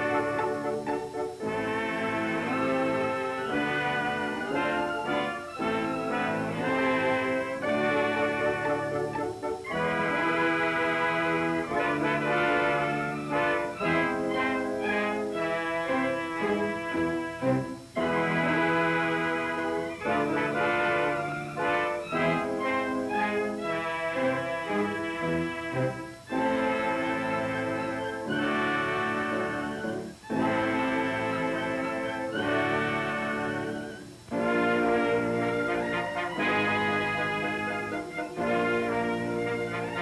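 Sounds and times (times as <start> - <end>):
orchestral music with brass: 0.0 - 40.0.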